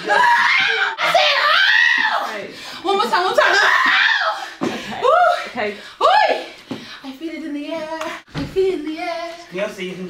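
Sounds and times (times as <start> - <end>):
woman shrieking: 0.0 - 2.3, 3.4 - 6.5.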